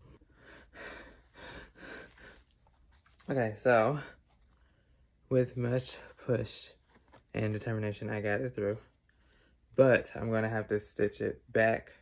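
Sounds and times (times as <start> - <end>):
person breathing noisily: 0.0 - 2.6.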